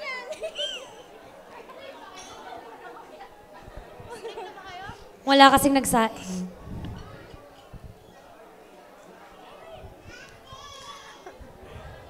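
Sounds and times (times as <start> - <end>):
faint chatter of people: 0.0 - 12.0.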